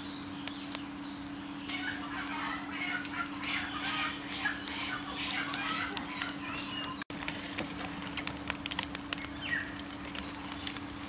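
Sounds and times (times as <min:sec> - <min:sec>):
birds calling: 0:00.0 - 0:07.1, 0:08.9 - 0:11.0
steady low hum: 0:00.0 - 0:11.0.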